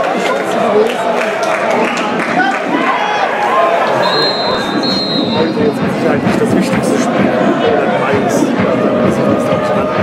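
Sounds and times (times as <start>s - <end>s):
stadium crowd voices: 0.0s - 10.0s
referee whistle blast: 4.0s - 5.6s.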